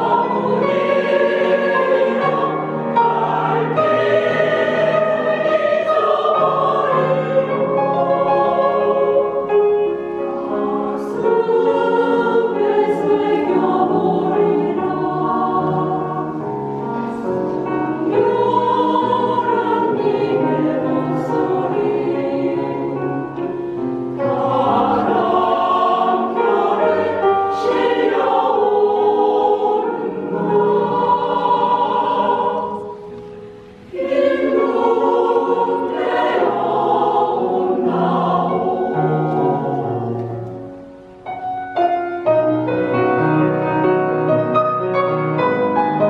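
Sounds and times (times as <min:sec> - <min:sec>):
mixed choir singing: 0:00.0 - 0:41.4.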